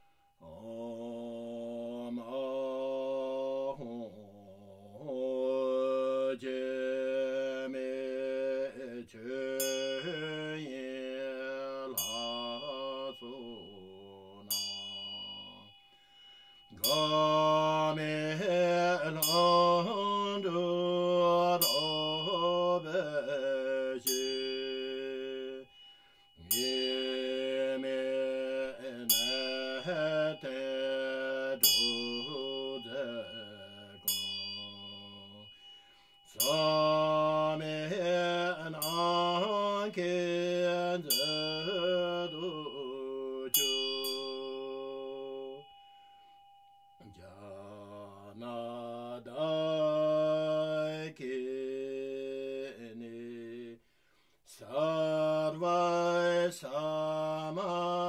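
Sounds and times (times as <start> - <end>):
small bell ringing: 9.5 - 48.8.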